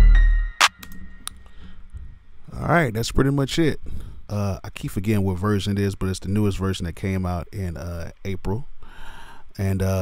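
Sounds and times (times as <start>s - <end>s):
hip-hop beat with bass: 0.0s - 1.4s.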